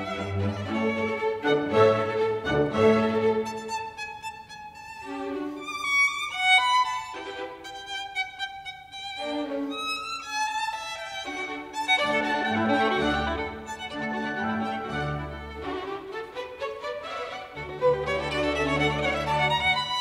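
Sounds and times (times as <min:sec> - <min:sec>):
violin melody with vibrato: 0:00.0 - 0:20.0.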